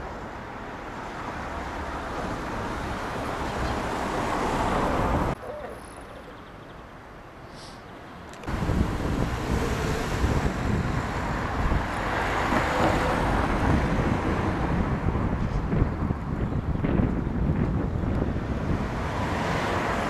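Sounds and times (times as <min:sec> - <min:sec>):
wind buffeting microphone: 0:08.4 - 0:20.0.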